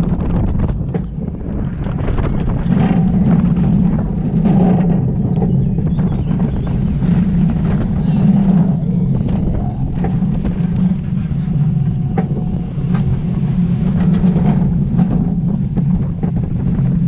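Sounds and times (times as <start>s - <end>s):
roller coaster wheels rumbling: 0.0s - 17.0s
wind buffeting microphone: 0.0s - 17.0s.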